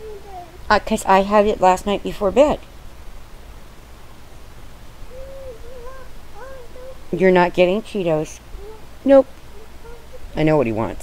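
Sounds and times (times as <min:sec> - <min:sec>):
toddler whiny humming: 0:00.0 - 0:00.7, 0:05.1 - 0:07.2, 0:08.4 - 0:10.4.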